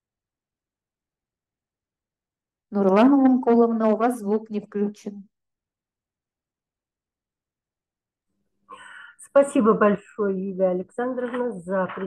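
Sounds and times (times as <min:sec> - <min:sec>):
person speaking: 0:09.3 - 0:12.0.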